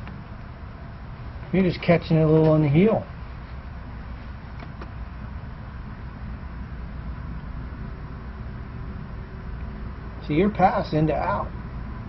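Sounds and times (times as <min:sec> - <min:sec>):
faint steady hum: 0:00.0 - 0:12.0
low background rumble: 0:00.0 - 0:12.0.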